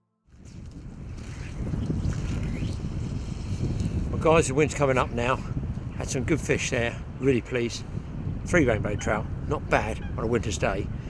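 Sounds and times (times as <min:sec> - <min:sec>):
wind buffeting microphone: 0:00.3 - 0:11.0.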